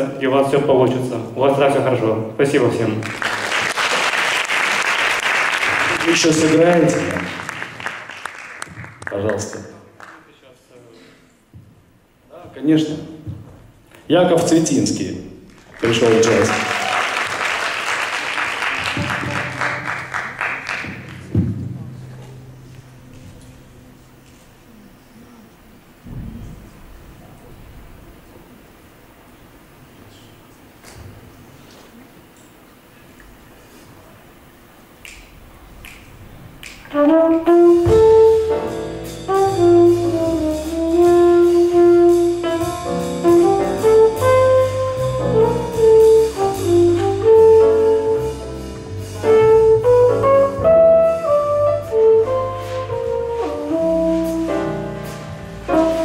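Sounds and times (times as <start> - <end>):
piano: 0.0 - 10.0, 11.8 - 56.0
drums: 11.4 - 24.7, 26.0 - 28.7, 35.2 - 56.0
low steady hum: 18.8 - 37.7
low bass notes: 18.9 - 24.7, 36.3 - 56.0
flugelhorn melody: 36.9 - 56.0.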